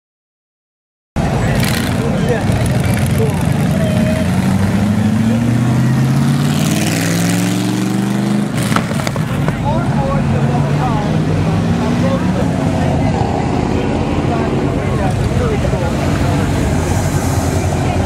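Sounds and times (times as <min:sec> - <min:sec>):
crowd voices and shouts: 0:01.2 - 0:07.5, 0:08.4 - 0:18.0
car engine revving: 0:01.2 - 0:18.0.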